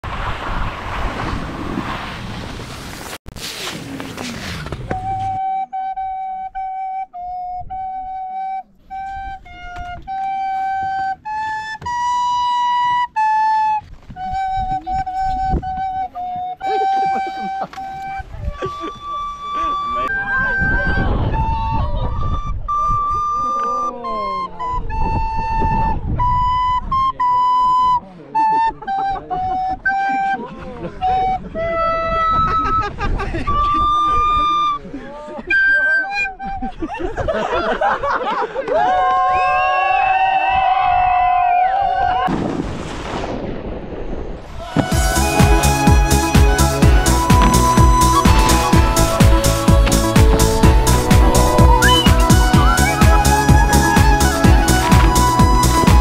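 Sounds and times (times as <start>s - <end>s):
wind rushing on microphone: 0.0s - 3.2s, 13.8s - 16.4s, 20.1s - 23.5s, 24.6s - 27.2s, 31.0s - 34.8s, 40.5s - 56.0s
recorder playing a simple tune: 4.9s - 36.9s, 44.8s - 56.0s
voices: 44.5s - 56.0s.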